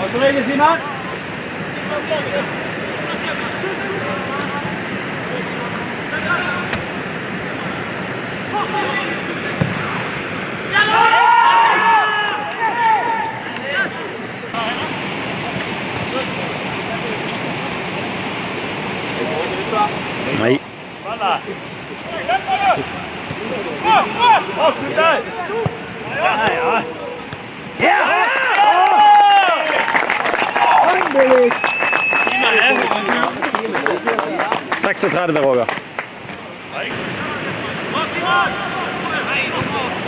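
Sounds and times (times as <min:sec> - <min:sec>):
players shouting: 0:10.6 - 0:14.1, 0:22.0 - 0:34.8.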